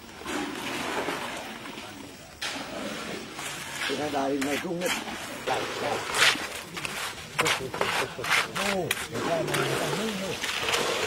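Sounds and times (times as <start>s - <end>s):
trowel scraping wet concrete: 3.1s - 11.0s.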